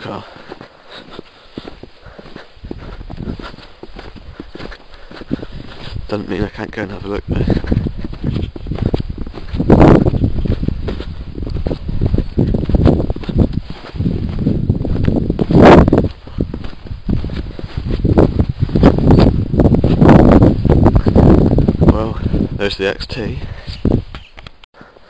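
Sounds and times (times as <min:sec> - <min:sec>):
footsteps crunching through snow: 0:00.0 - 0:22.5
wind on microphone: 0:01.1 - 0:24.6.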